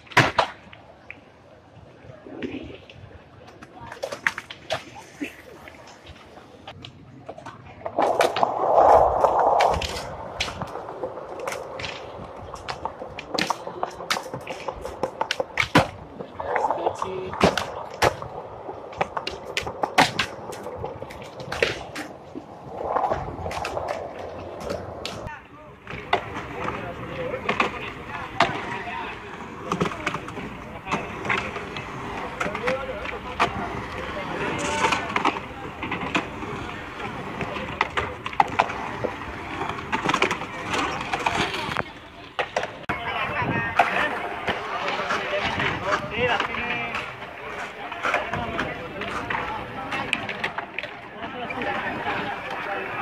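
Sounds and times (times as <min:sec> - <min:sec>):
skateboard wheels rolling: 0:00.0 - 0:53.0
skateboards clacking on ground: 0:00.0 - 0:53.0
people talking: 0:03.4 - 0:06.6, 0:08.0 - 0:22.1, 0:22.7 - 0:53.0.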